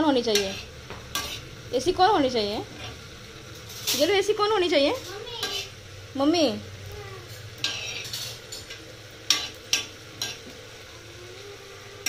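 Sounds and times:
seeds roasting hiss: 0.0s - 12.0s
spoon scraping on pan: 0.2s - 1.6s, 4.9s - 5.8s, 7.2s - 10.6s.

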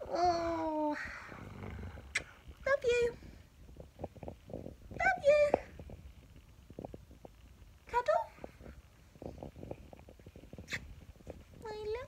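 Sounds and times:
woman speaking: 2.6s - 3.2s, 4.9s - 5.7s, 7.9s - 8.4s, 11.6s - 12.0s.

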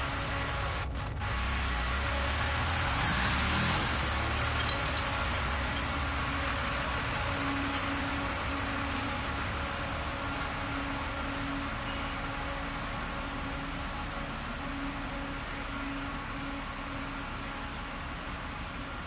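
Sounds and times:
vehicle engine rumbling low: 0.0s - 19.0s.

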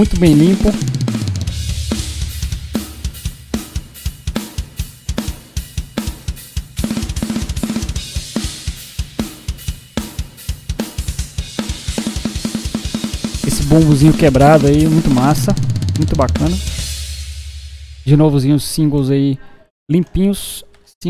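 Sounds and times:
rapid bass drum notes: 0.0s - 18.3s
snare and tom hits: 0.4s - 18.1s.

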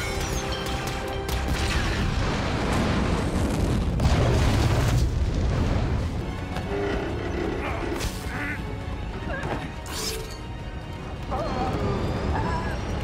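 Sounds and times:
long loud explosion: 1.9s - 6.1s.

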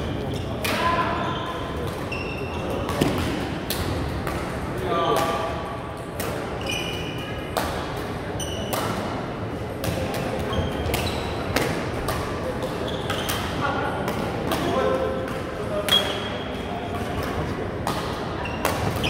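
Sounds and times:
murmur of voices: 0.0s - 19.0s
shoes squeaking on floor: 0.2s - 3.1s, 6.6s - 7.2s, 8.4s - 8.7s, 10.5s - 11.5s, 12.8s - 13.5s, 18.4s - 19.0s
rackets hitting shuttlecock: 2.8s - 4.5s.

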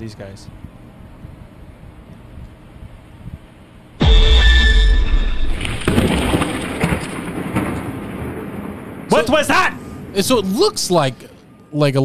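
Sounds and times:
loud boom with deep rumble: 4.0s - 9.1s.

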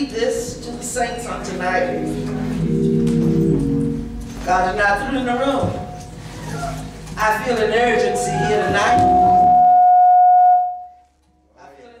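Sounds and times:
high-pitched tone: 7.7s - 11.1s.

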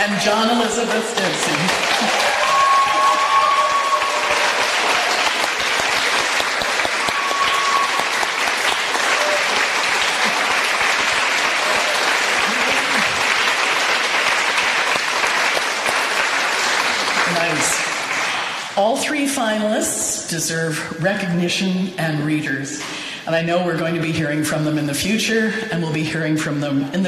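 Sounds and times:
audience applauding: 0.0s - 18.8s.

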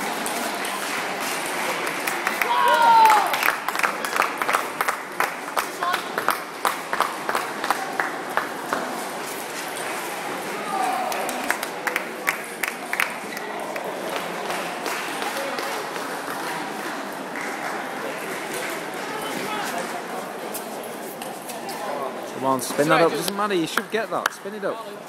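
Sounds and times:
murmur of voices in hall: 0.0s - 25.0s.

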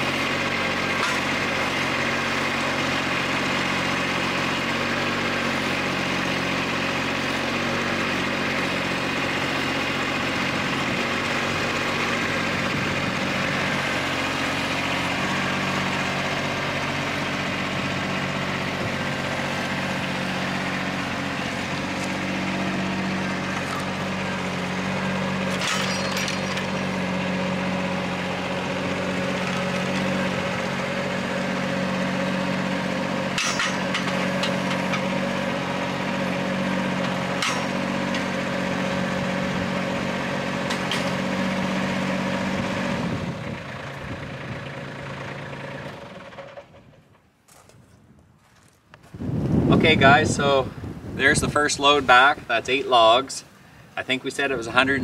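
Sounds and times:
tractor diesel engine running: 0.0s - 55.0s.

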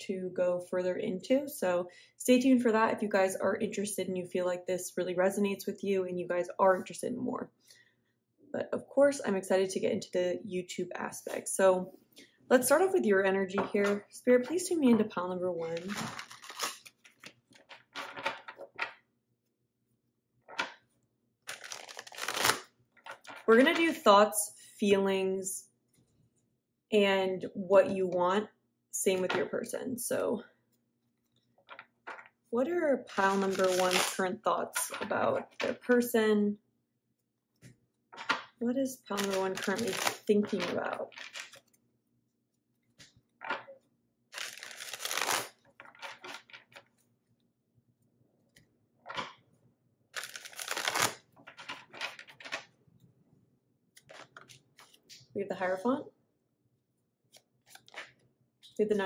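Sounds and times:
cards being shuffled by hand: 15.6s - 19.0s, 21.4s - 23.8s, 33.0s - 34.2s, 39.1s - 41.8s, 44.3s - 47.0s, 50.2s - 52.7s, 54.0s - 55.3s, 57.3s - 58.8s.

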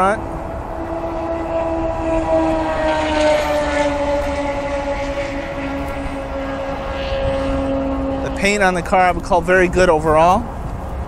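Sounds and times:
engine drone: 0.0s - 11.0s.

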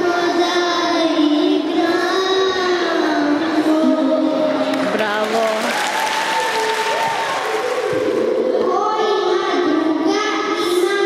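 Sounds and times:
girl singing into microphone: 0.0s - 4.9s, 7.9s - 11.0s.

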